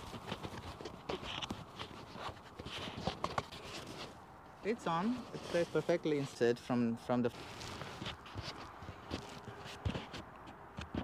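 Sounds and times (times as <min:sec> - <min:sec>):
microphone handling rustling: 0:00.0 - 0:11.0.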